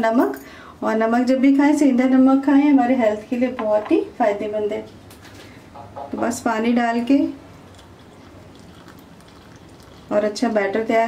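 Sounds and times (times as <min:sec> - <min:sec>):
water trickling into a bowl: 0:07.5 - 0:10.8.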